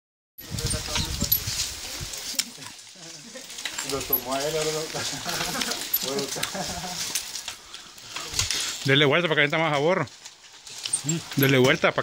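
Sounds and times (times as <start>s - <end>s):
cane stalks cracking: 0.4s - 12.0s
sugarcane press creaking clatter: 0.4s - 12.0s.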